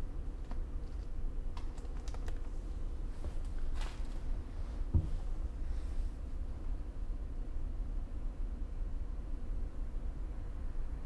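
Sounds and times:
low thump: 4.9s - 5.2s.

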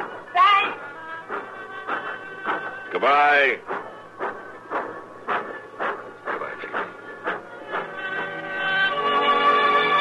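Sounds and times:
hiss of steam: 0.0s - 8.8s
steam locomotive chuffing: 0.0s - 10.0s.

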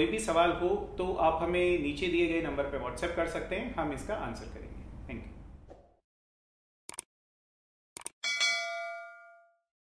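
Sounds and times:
notification bell ding: 8.2s - 9.6s.

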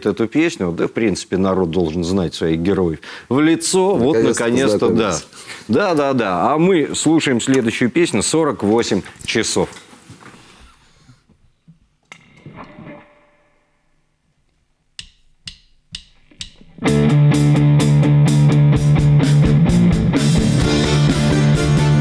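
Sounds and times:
drumstick count-in clicks: 15.0s - 16.8s
live band playing: 16.9s - 22.0s.

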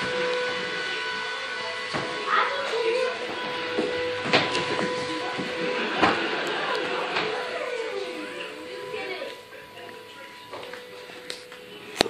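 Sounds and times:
steady machine hum: 0.0s - 12.0s.

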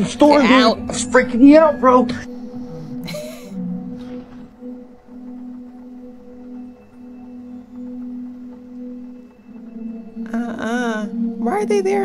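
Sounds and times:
faint higher tone: 0.0s - 12.0s
low eerie drone: 0.0s - 12.0s.

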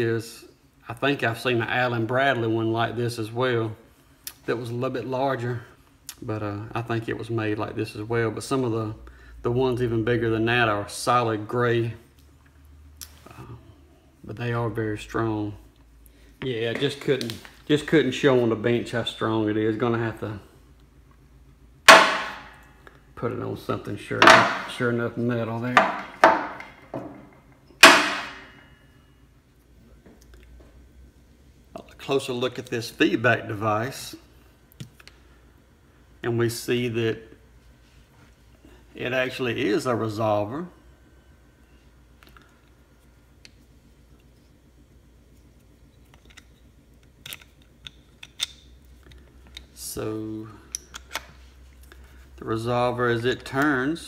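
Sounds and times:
sharp metallic clang: 21.9s - 22.8s, 24.2s - 24.9s, 25.7s - 28.9s
metal parts clicking and tapping: 25.7s - 28.6s, 46.0s - 49.7s.

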